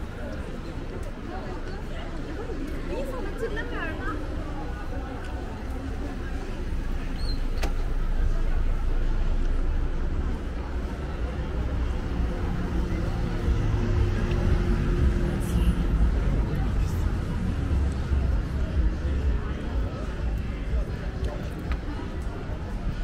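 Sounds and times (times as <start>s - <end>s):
passers-by talking: 0.0s - 23.0s.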